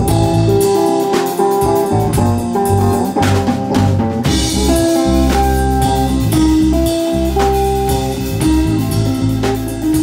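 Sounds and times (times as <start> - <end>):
held guitar notes: 0.0 - 10.0
steady drum beat: 0.0 - 10.0.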